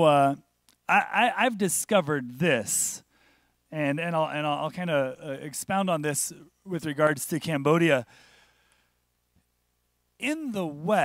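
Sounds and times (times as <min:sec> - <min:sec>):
breath into microphone: 0:03.1 - 0:03.6, 0:08.1 - 0:09.0.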